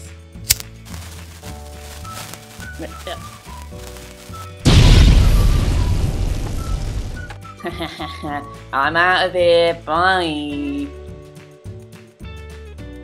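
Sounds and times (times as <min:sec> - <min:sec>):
light background music: 0:00.0 - 0:13.0
loud explosion blast: 0:04.6 - 0:07.3.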